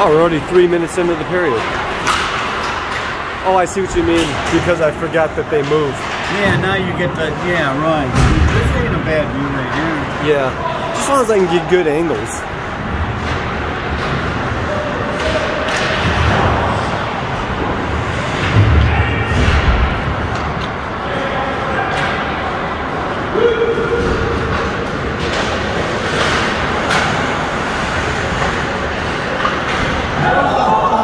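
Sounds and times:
noisy hall background: 0.0s - 31.0s
puck and sticks knocking boards: 1.5s - 3.3s, 24.0s - 27.4s.

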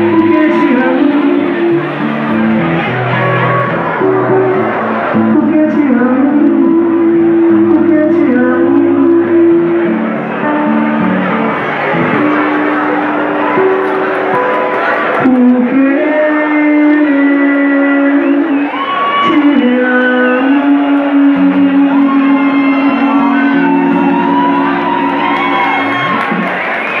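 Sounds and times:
crowd whooping: 0.0s - 6.0s, 9.7s - 15.8s, 17.5s - 27.0s
person singing long notes: 0.0s - 26.2s
acoustic guitar: 0.0s - 27.0s.

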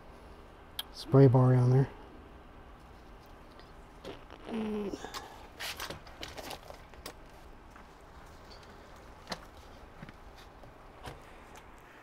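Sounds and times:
low voice hum: 4.1s - 5.5s.

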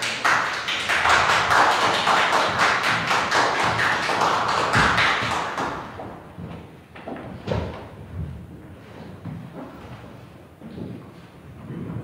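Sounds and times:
applause: 0.0s - 6.0s.

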